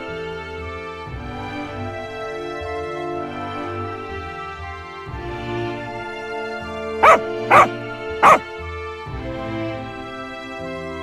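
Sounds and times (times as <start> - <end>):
dog barking: 7.0 - 8.4.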